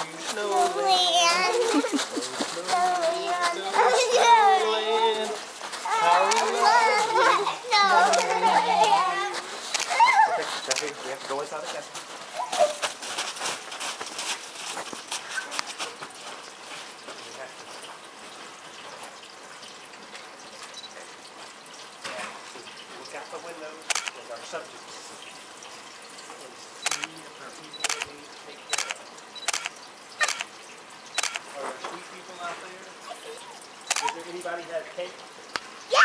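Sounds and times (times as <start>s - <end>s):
light crunches and clicks: 10.6s - 11.4s.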